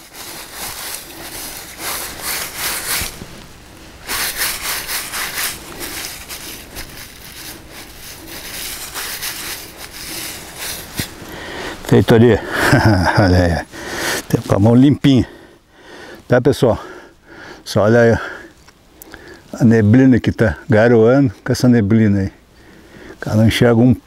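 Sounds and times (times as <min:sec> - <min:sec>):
gloved hand scrubbing in wet grass: 0:00.0 - 0:14.8.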